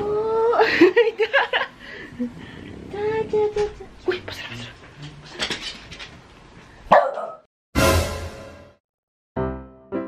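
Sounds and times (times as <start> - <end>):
dog barking: 6.9 - 7.5.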